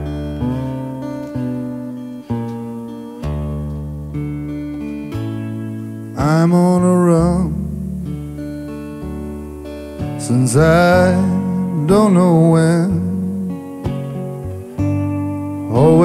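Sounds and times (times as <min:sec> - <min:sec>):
lap steel guitar with slide: 0:00.0 - 0:16.0
man singing drawn-out line: 0:06.0 - 0:08.2, 0:10.2 - 0:14.6, 0:15.4 - 0:16.0.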